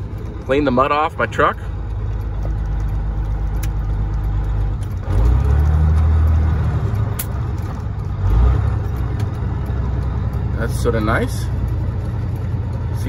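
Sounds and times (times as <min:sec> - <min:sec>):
diesel truck engine running: 0:00.0 - 0:13.0.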